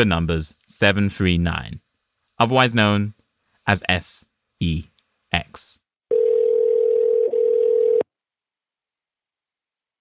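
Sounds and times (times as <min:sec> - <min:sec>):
telephone ringback tone: 0:06.1 - 0:08.0.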